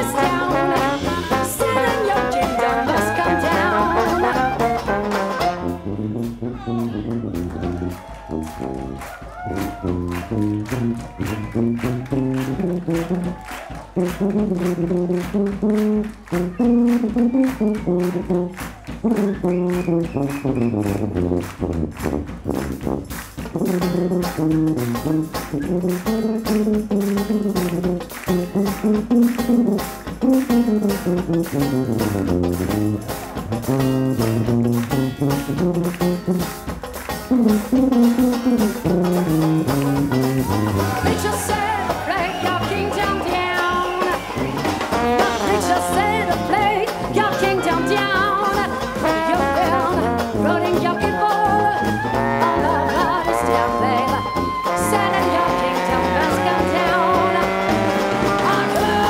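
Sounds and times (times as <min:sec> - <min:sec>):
drum kit beat: 0:00.0 - 0:59.0
jazz band playing: 0:00.0 - 0:59.0
sousaphone bass line: 0:00.0 - 0:59.0.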